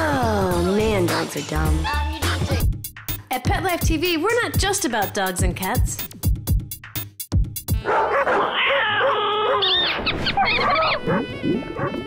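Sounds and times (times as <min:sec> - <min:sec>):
background music with sharp beats: 0:00.0 - 0:07.8
small dogs barking and yapping: 0:07.8 - 0:12.0.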